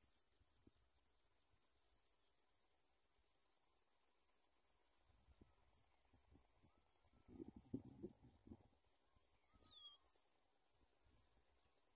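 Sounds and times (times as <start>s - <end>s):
faint high-pitched drone: 0.0s - 11.9s.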